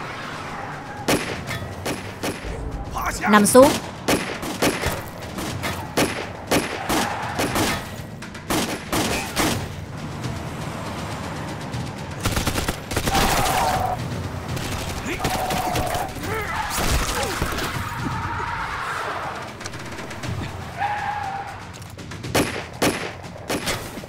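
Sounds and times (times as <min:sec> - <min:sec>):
pistol shots: 0:03.7 - 0:09.7, 0:22.3 - 0:24.0.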